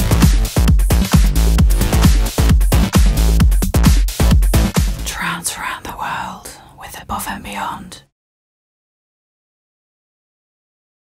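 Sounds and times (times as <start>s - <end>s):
person whispering: 5.0s - 8.1s.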